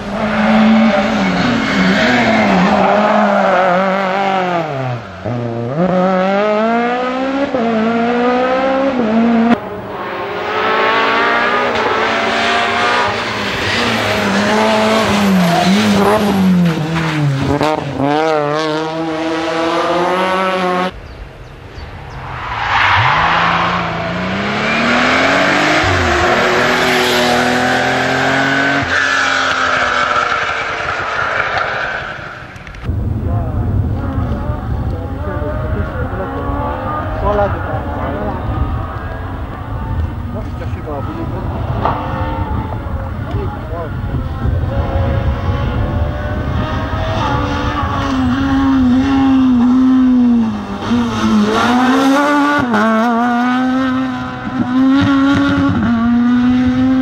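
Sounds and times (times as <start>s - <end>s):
rally car engines revving: 0.0s - 21.0s, 21.7s - 57.0s.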